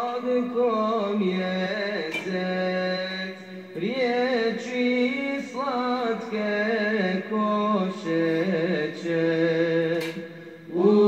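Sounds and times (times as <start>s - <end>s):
person singing devotional chant: 0.0s - 11.0s.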